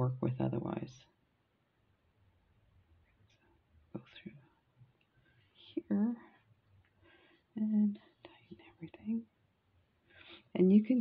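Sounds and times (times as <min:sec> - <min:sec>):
person whispering: 0:04.0 - 0:04.5, 0:05.6 - 0:06.4, 0:07.6 - 0:09.3.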